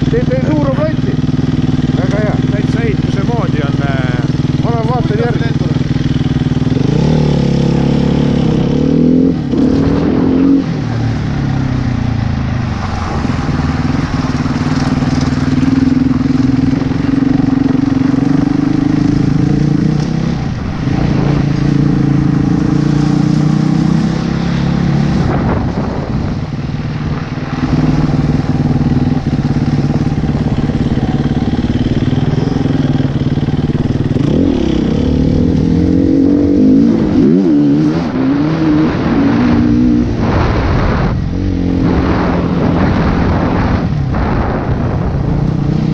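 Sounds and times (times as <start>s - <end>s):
dirt bike engine revving: 0.0s - 26.4s, 27.2s - 45.9s.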